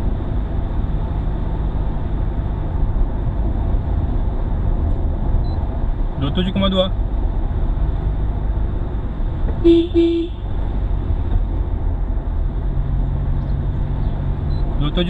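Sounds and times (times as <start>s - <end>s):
car engine and road rumble: 0.0s - 15.0s
car horn toots: 9.6s - 10.5s.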